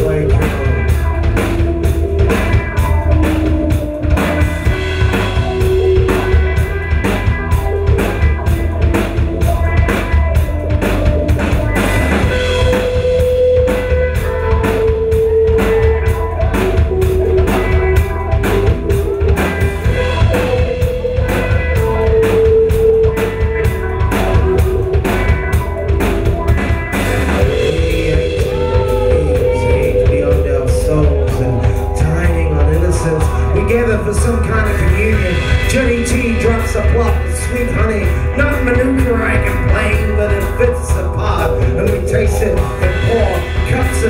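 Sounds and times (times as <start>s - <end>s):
bass guitar: 0.0s - 44.0s
drum kit beat: 0.0s - 44.0s
electric guitar melody: 0.0s - 44.0s.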